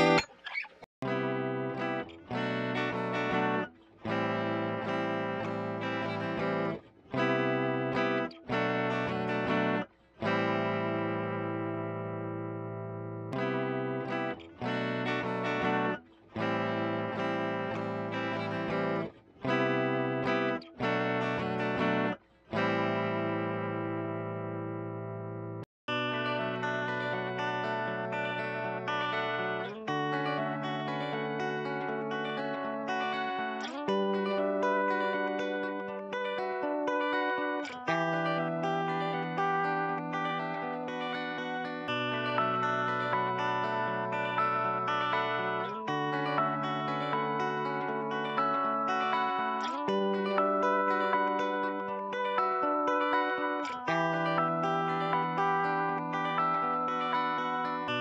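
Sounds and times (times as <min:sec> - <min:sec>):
guitar loop: 0:00.0 - 0:58.0.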